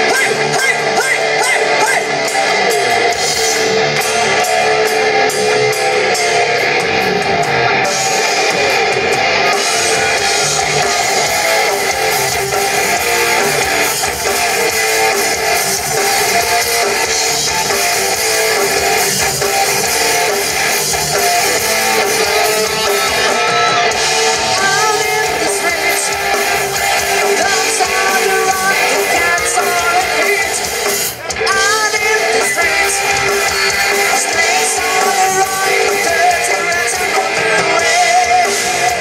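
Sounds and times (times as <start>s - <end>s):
bass guitar: 0.0s - 39.0s
drums: 0.0s - 39.0s
electric guitars: 0.0s - 39.0s.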